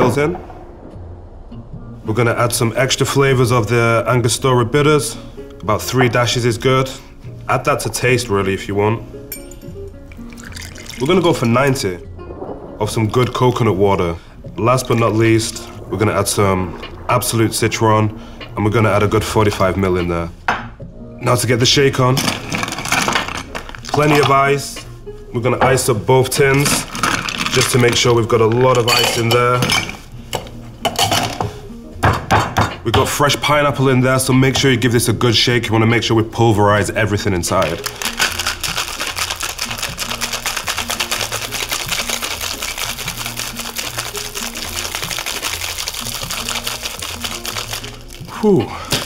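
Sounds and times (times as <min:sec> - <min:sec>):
background music with bassline: 0:00.0 - 0:49.0
ice cubes clattering against scoop: 0:10.3 - 0:11.4, 0:22.2 - 0:24.4, 0:26.6 - 0:29.4, 0:37.5 - 0:49.0.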